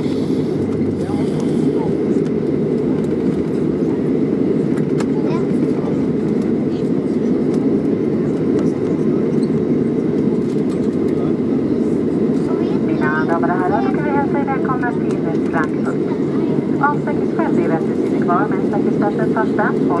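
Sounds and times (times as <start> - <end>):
low airplane cabin rumble: 0.0 - 20.0.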